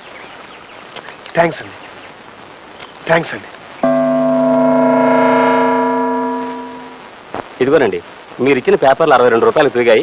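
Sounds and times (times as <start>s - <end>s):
ringing gong-like tone: 3.8s - 7.1s.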